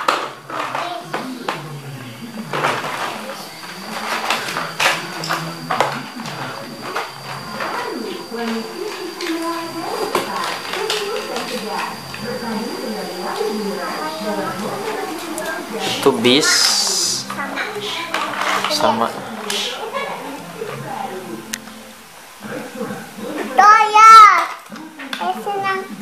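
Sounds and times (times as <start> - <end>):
plastic toys clattering: 0.0 - 1.6, 2.5 - 7.7, 17.6 - 19.6, 24.0 - 25.4
indistinct voices: 0.0 - 26.0.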